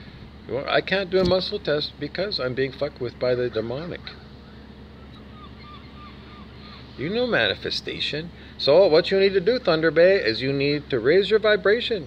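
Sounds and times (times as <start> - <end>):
steady low hum: 0.0 - 12.0
bird chirping: 4.2 - 7.0.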